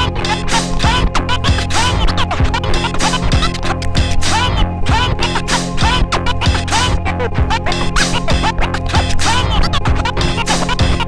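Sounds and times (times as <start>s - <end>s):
steady beat: 0.0s - 11.0s
vinyl record scratching: 0.0s - 11.0s.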